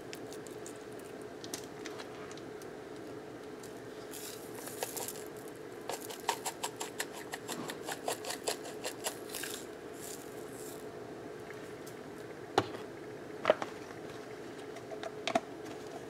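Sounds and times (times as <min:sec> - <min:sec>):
steady hum: 0:00.0 - 0:16.0
spice shaker rattling: 0:04.1 - 0:10.8.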